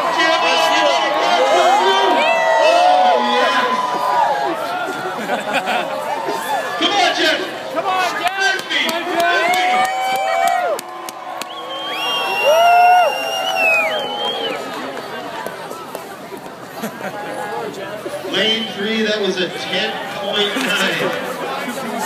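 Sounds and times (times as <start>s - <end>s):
crowd cheering and shouting: 0.0s - 22.0s.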